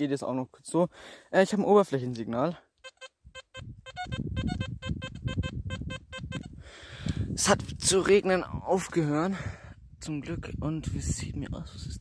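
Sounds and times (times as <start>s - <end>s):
metal detector beeps: 2.8s - 6.6s.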